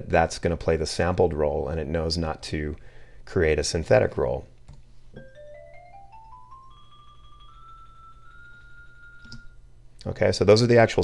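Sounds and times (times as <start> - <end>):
xylophone rolls: 5.2 - 9.6.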